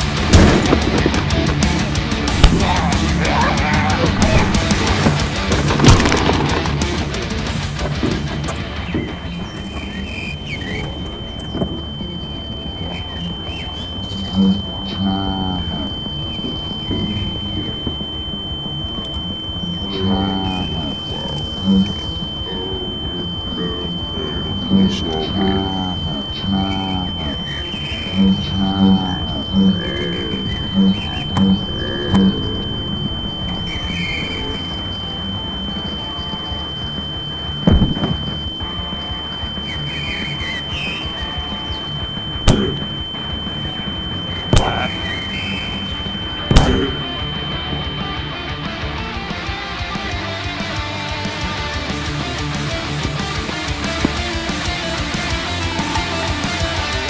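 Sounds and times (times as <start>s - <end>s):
low wavering pitched sounds: 0.0s - 57.0s
short low pulses: 0.0s - 57.0s
steady high-pitched tone: 0.0s - 57.0s.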